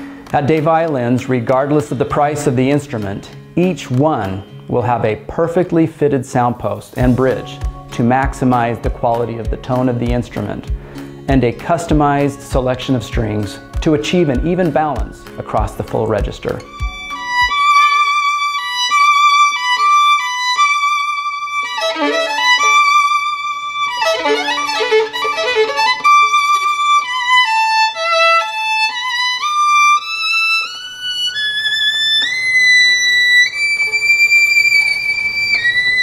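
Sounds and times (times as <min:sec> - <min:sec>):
solo violin melody: 0:07.0 - 0:36.0.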